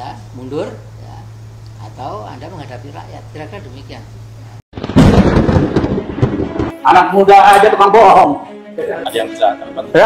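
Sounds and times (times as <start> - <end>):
loud rumbling with cracks: 4.7 - 6.8.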